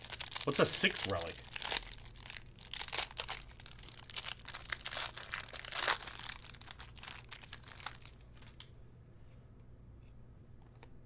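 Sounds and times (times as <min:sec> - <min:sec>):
plastic wrapper crinkling and tearing: 0:00.0 - 0:08.7.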